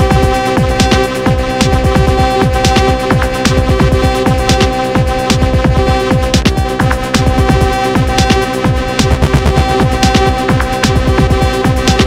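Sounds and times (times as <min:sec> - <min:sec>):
bass strokes falling in pitch: 0:06.8 - 0:12.0.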